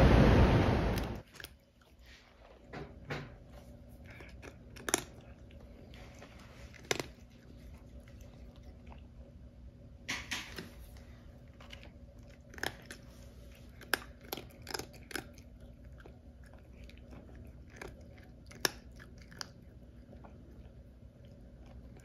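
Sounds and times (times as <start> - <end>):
cat crunching dry kibble: 1.0 - 9.4, 10.0 - 22.0.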